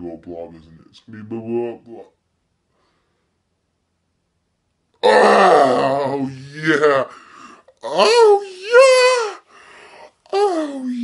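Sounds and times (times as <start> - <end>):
man's guttural groan: 5.0 - 9.4.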